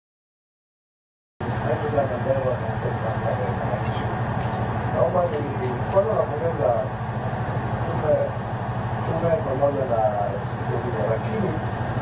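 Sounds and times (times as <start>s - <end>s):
low engine-like hum: 1.4s - 12.0s.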